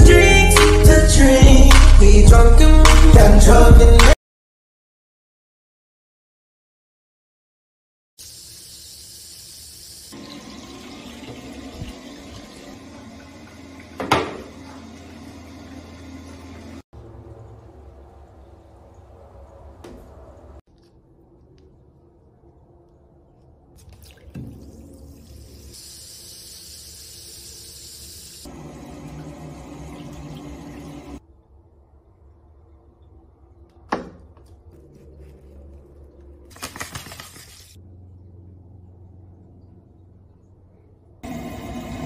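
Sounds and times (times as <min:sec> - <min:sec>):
tap water filling bathtub: 0:09.9 - 0:16.8, 0:23.8 - 0:27.8, 0:28.4 - 0:31.2
fizzing and bubbling: 0:23.7 - 0:27.6
splash into bathwater: 0:23.8 - 0:26.1, 0:36.5 - 0:37.8.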